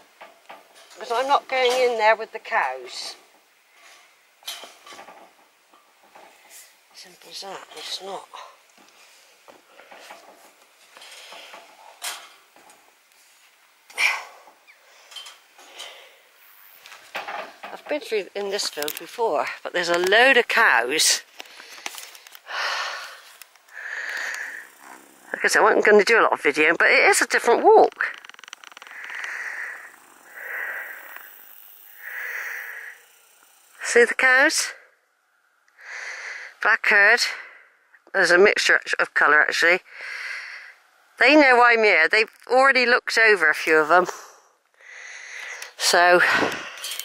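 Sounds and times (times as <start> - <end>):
person breathing slowly: 13.9 - 16.4, 21.3 - 25.3, 28.8 - 33.5, 35.8 - 36.6, 39.9 - 40.8, 44.1 - 45.8.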